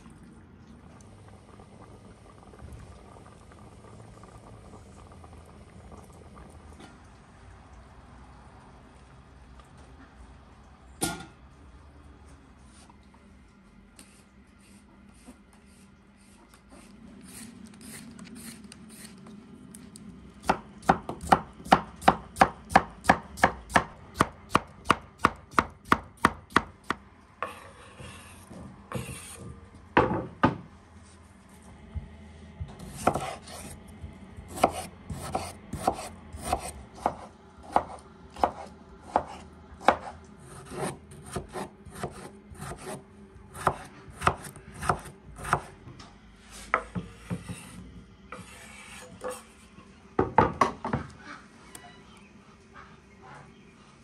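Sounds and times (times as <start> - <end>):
knife chopping on wooden board: 32.8 - 33.7, 34.5 - 43.0, 43.6 - 45.7.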